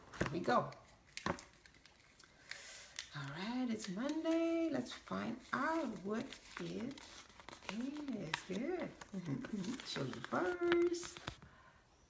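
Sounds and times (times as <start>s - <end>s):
paper slip crackling: 0.5s - 11.5s.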